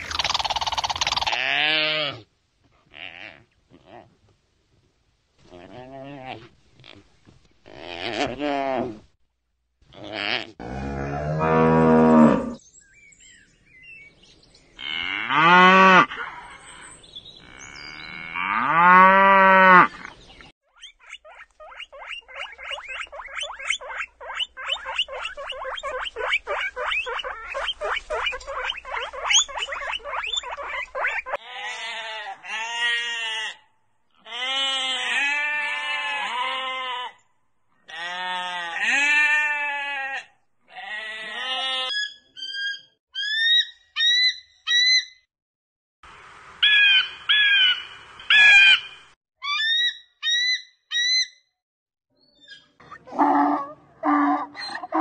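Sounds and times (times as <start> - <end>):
cow mooing: 10.3 - 12.6
guinea pigs squeaking: 20.7 - 31.4
sheep bleating: 37.9 - 41.9.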